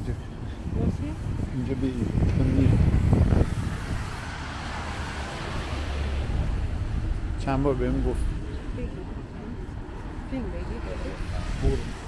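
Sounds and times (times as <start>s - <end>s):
traffic engine rumble: 0.0s - 12.0s
tyres hissing on wet road: 0.1s - 8.8s.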